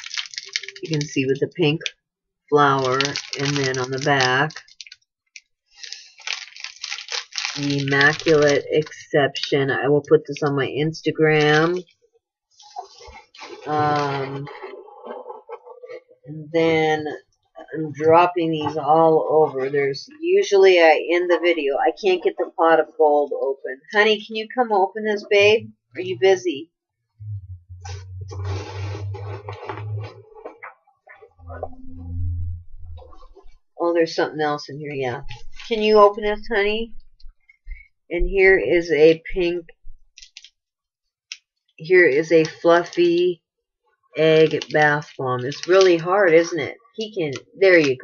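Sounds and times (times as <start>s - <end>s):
shopping bag rustling: 0.0s - 1.2s, 2.6s - 5.0s, 5.8s - 8.6s
cellophane crinkling: 0.0s - 1.9s, 2.6s - 9.6s, 44.4s - 46.2s
steady low hum: 27.2s - 33.6s.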